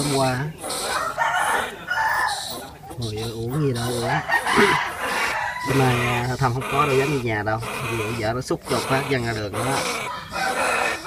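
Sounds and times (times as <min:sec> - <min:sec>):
rooster crowing: 0:00.8 - 0:02.6, 0:04.0 - 0:06.4, 0:10.0 - 0:11.0.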